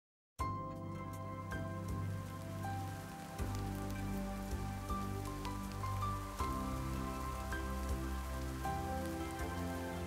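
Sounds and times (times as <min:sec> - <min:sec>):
steady rainfall: 0:00.8 - 0:10.0.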